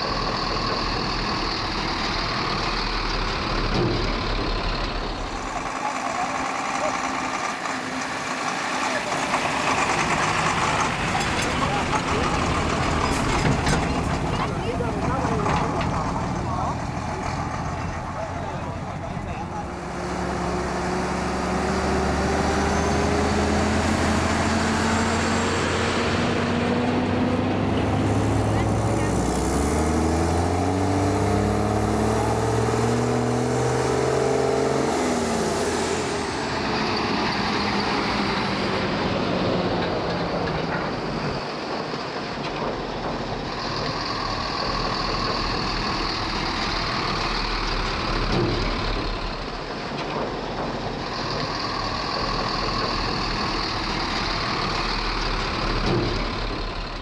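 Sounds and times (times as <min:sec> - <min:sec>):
diesel truck engine accelerating: 0:00.0 - 0:57.0.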